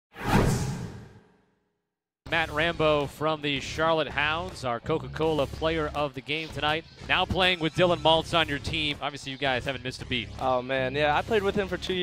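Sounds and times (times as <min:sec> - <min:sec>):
whoosh: 0:00.1 - 0:01.4.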